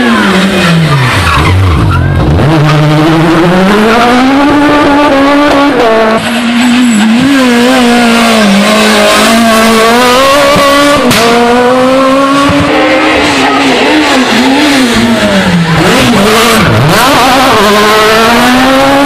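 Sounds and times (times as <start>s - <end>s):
rally car engines revving: 0.0s - 19.0s.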